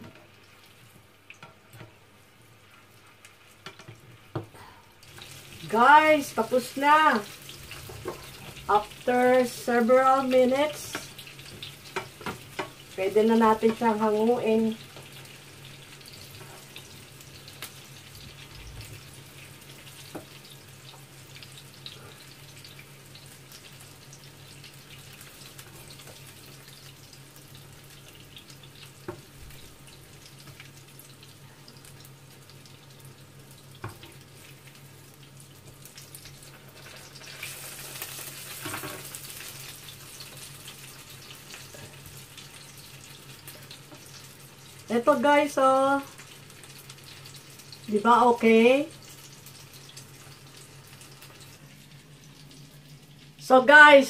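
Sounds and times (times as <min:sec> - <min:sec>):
meatballs sizzling in a pan: 0:00.0 - 0:54.0.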